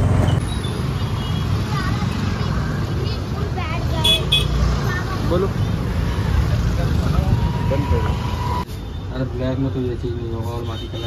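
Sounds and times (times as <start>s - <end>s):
motorcycle and scooter engines: 0.0s - 10.7s
voices of passers-by: 0.0s - 11.0s.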